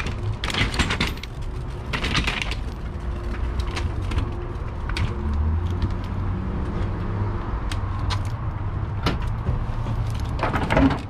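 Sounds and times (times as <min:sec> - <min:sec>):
hand truck metal rattles: 0:00.0 - 0:05.2, 0:09.0 - 0:11.0.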